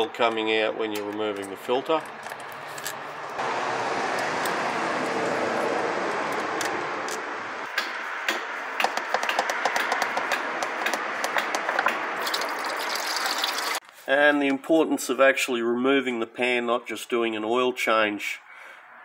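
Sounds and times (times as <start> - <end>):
filter clicks and knocks: 6.6 - 12.5
fluid pouring into a drain pan: 12.2 - 13.8.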